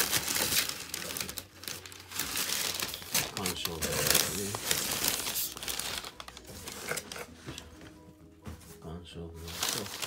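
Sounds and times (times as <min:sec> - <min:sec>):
cardboard and paper rustling: 0:00.0 - 0:10.0.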